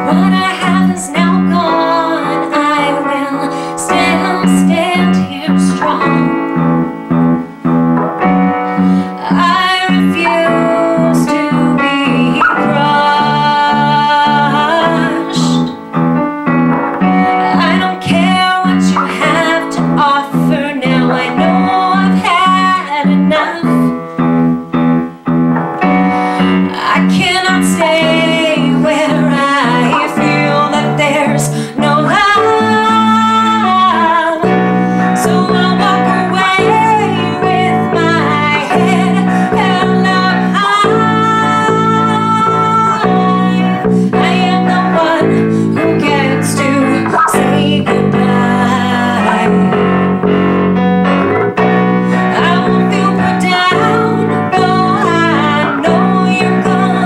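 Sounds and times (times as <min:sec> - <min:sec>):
woman singing: 0:00.0 - 0:06.7, 0:08.4 - 0:16.0, 0:17.0 - 0:24.2, 0:26.0 - 0:50.2, 0:51.6 - 0:57.0
electric piano: 0:00.0 - 0:57.0
electric bass guitar: 0:03.8 - 0:57.0.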